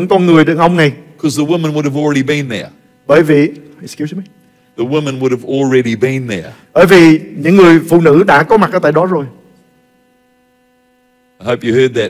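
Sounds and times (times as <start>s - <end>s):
man speaking: 0.0s - 9.5s, 11.4s - 12.0s
electrical hum: 0.0s - 12.0s.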